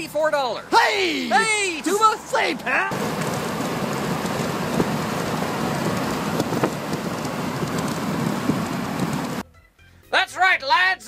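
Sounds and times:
road noise: 0:00.0 - 0:09.4
wind rushing over microphone: 0:02.9 - 0:09.4.

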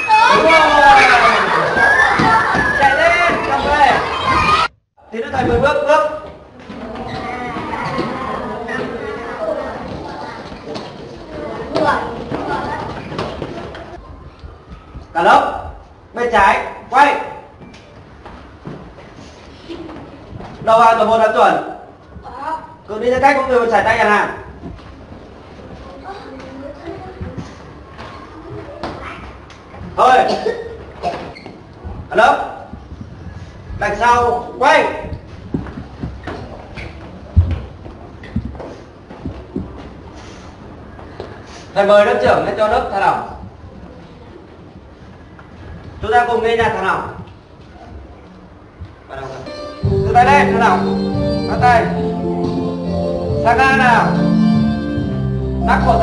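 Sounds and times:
schoolchildren's voices: 0:00.0 - 0:04.7, 0:06.6 - 0:14.6, 0:25.6 - 0:29.6
background hubbub: 0:00.0 - 0:56.0
children's feet thumping on ground: 0:01.6 - 0:04.5, 0:09.8 - 0:15.1, 0:35.0 - 0:40.1.

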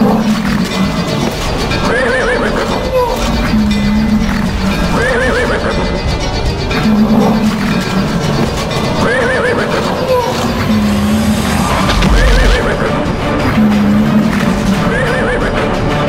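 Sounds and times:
dramatic background score: 0:00.0 - 0:16.0.

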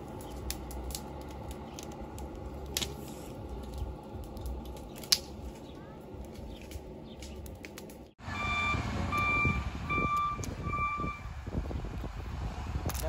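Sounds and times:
low outdoor rumble: 0:00.0 - 0:13.0
reversing alarm beeping: 0:08.3 - 0:11.3.

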